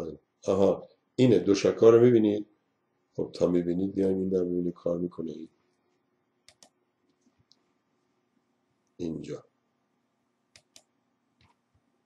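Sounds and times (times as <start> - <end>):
computer mouse clicking: 6.5 - 6.8, 10.5 - 11.6.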